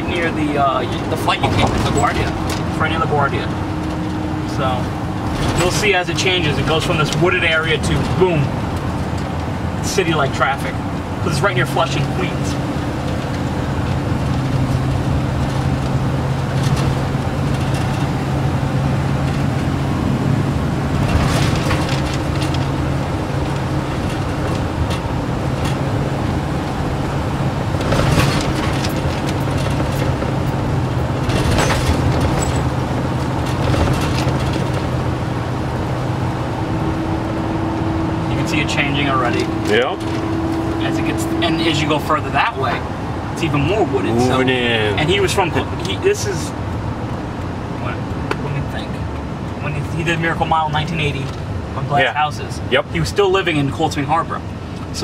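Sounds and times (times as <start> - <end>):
car road noise in cabin: 0.0 - 55.0
engine and tyre drone: 0.0 - 55.0.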